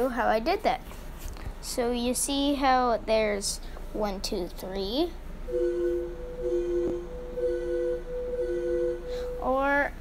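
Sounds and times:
digital keyboard notes: 5.5s - 9.6s.

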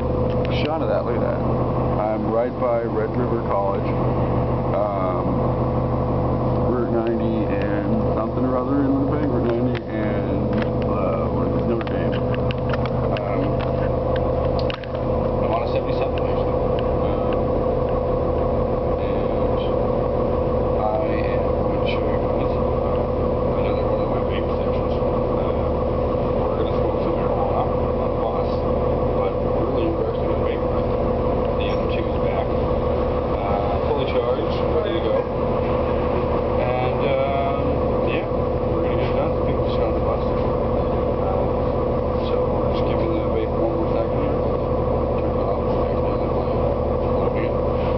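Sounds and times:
bus engine and road drone: 0.0s - 47.9s
constant hum tone: 0.0s - 47.9s.

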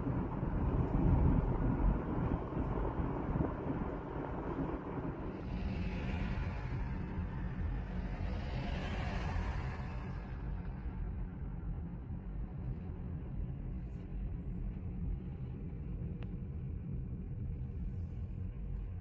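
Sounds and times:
wind buffeting microphone: 0.0s - 8.2s
road noise inside moving car: 0.0s - 19.0s.

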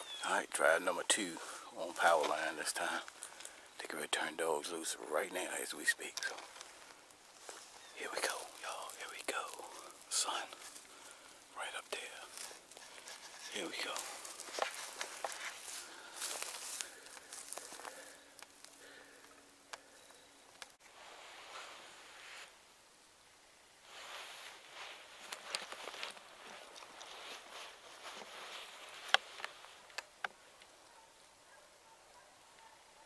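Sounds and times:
footsteps in dry grass: 0.0s - 3.8s, 5.4s - 20.2s, 23.8s - 30.2s.

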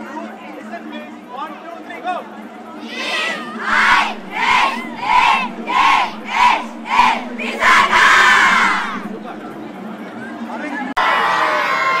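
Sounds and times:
children chanting in unison: 2.8s - 9.1s
children cheering: 11.0s - 12.0s.

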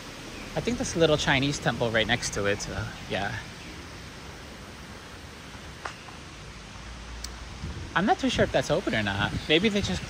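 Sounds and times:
outdoor background hiss: 0.0s - 10.0s
faint click: 7.2s - 7.4s.

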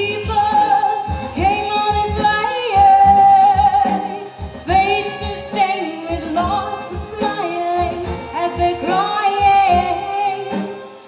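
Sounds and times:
woman singing: 0.0s - 10.8s
drum kit: 0.0s - 11.0s
violin: 0.0s - 11.0s.

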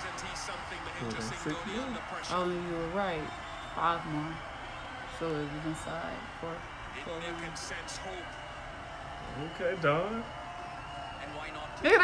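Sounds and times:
commentator talking: 0.0s - 4.4s, 11.7s - 12.0s
stadium crowd noise: 0.0s - 12.0s.

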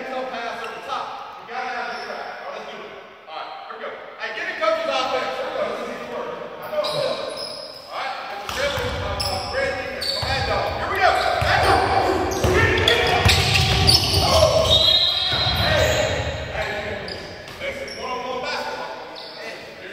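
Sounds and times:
players calling out: 8.4s - 18.4s.

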